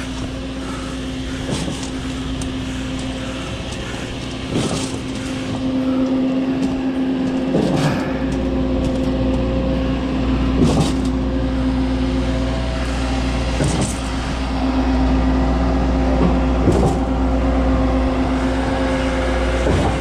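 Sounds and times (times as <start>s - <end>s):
concrete pump surging: 0.0s - 20.0s
deep engine rumble: 0.0s - 20.0s
engine humming: 0.0s - 20.0s.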